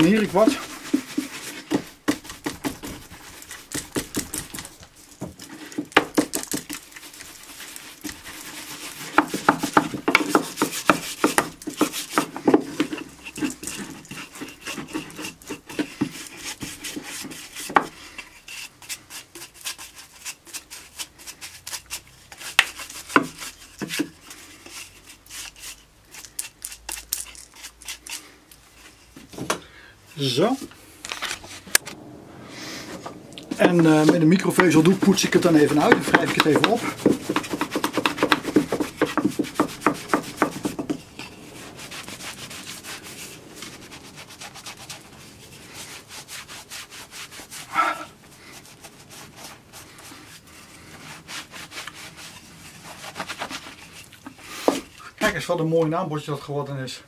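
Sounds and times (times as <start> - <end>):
bristles tapping and rubbing on wood: 0.0 - 20.7, 21.6 - 24.3, 33.2 - 45.1, 51.5 - 56.0.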